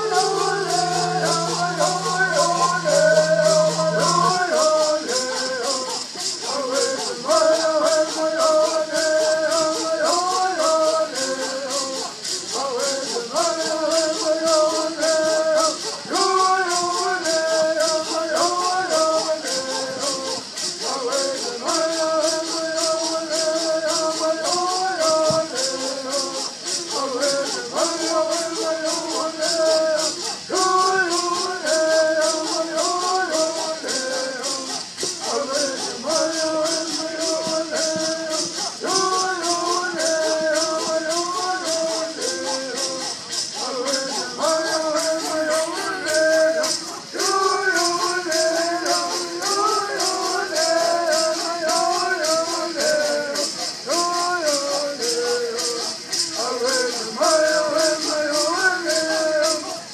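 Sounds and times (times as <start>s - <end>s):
gourd rattles shaken: 0.0s - 59.9s
men singing in unison: 0.0s - 59.9s.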